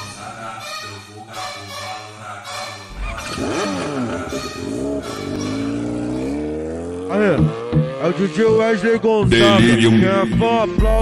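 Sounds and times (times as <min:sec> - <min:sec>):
funk music: 0:00.0 - 0:11.0
engine revving: 0:02.9 - 0:09.6.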